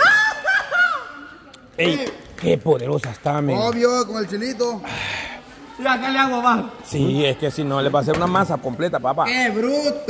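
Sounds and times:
man's high-pitched laugh: 0:00.0 - 0:01.3.

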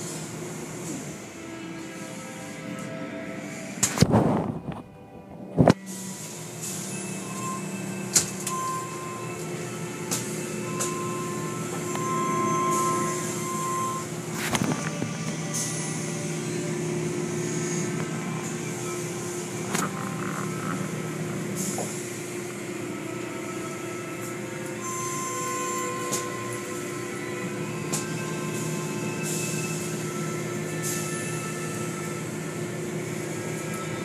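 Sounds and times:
machinery hum: 0:00.0 - 0:34.0.

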